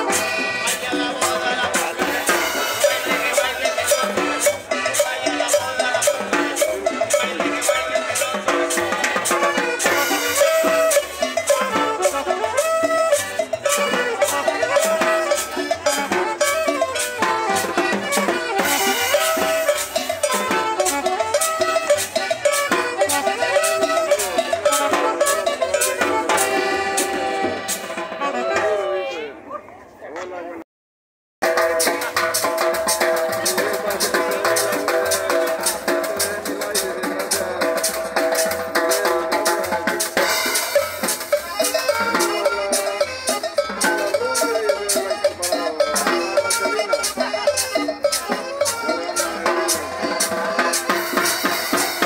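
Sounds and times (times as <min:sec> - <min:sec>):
hand drums: 0:00.0 - 0:29.0, 0:31.4 - 0:52.0
accordion: 0:00.0 - 0:29.1, 0:31.4 - 0:52.0
upright bass: 0:00.0 - 0:29.5, 0:31.4 - 0:52.0.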